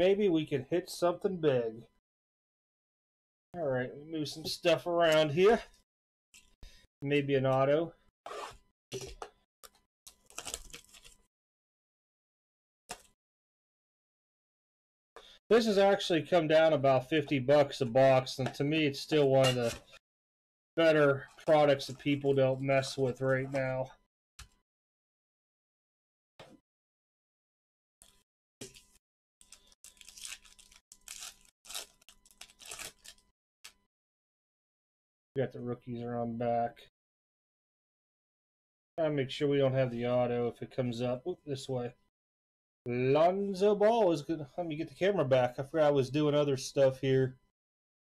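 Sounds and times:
foil wrapper tearing and crinkling: 0:10.1 - 0:11.3, 0:28.6 - 0:33.3.

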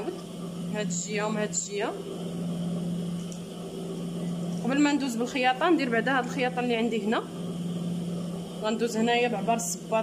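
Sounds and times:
sewing machine motor hum: 0:00.0 - 0:10.0.

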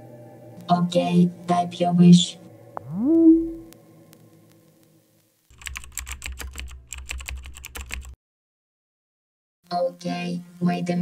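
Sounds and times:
rising electronic tone: 0:02.8 - 0:03.7
computer keyboard typing: 0:05.5 - 0:08.2.

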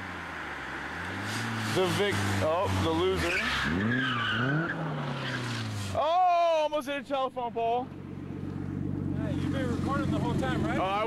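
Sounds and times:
car engine revving: 0:00.0 - 0:06.1, 0:07.8 - 0:11.0
tires squealing: 0:00.1 - 0:06.4.

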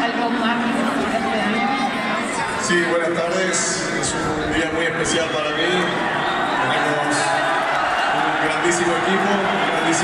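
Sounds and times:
speech over public-address system: 0:00.0 - 0:07.4
crowd murmuring: 0:00.0 - 0:10.0.

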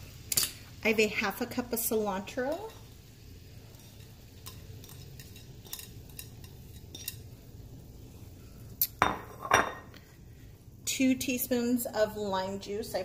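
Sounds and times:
low steady hum: 0:00.0 - 0:13.0
dishes clattering: 0:08.9 - 0:10.0.

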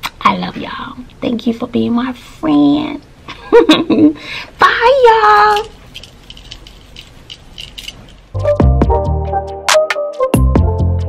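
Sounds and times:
hands clicking and rattling: 0:05.2 - 0:08.4.

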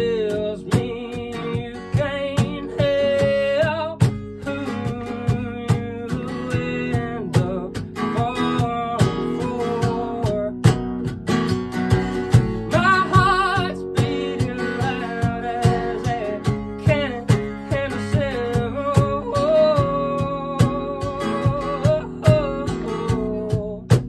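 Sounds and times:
man singing: 0:00.0 - 0:11.1, 0:12.2 - 0:24.0
cajon beat: 0:00.0 - 0:24.0
strummed acoustic guitar: 0:00.0 - 0:24.0.

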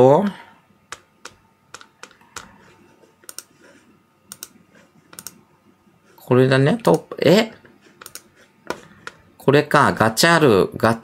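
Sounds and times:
computer mouse clicks: 0:00.9 - 0:02.6, 0:03.2 - 0:03.6, 0:04.3 - 0:05.4, 0:08.0 - 0:09.2.

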